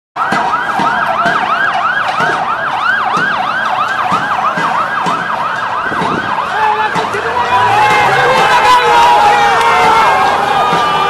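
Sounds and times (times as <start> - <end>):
siren yelping: 0.2 - 11.0
voices: 0.3 - 11.0.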